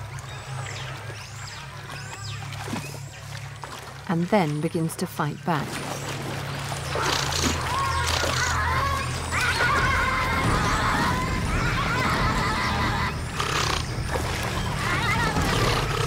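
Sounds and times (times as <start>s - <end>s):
low music drone: 0.0s - 16.0s
water splashing: 0.0s - 16.0s
otters screaming: 6.8s - 16.0s.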